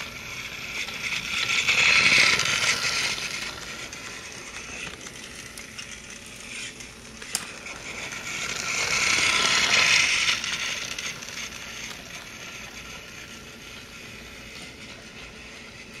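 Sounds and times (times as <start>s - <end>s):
toy train motor whirring: 0.0s - 16.0s.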